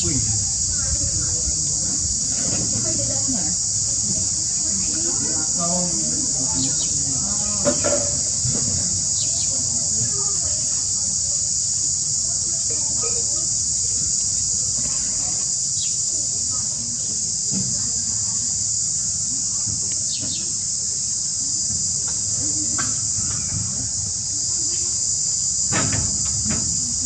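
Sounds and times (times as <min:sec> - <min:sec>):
insects droning: 0:00.0 - 0:27.0.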